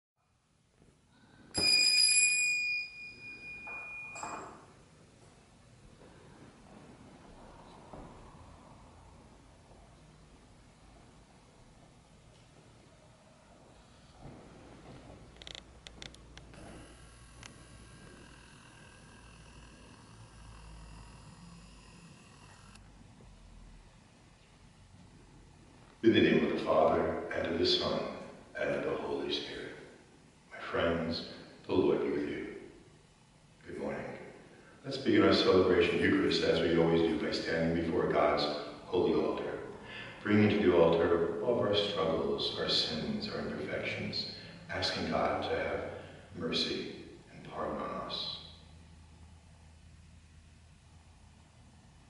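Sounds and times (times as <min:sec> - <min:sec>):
small bell ringing: 0:01.6 - 0:04.6
low hum: 0:03.0 - 0:29.3
faint steady hiss: 0:03.3 - 0:52.0.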